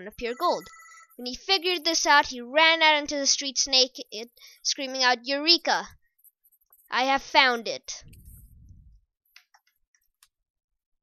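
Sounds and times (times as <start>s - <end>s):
low handling rumble: 8.0s - 9.0s.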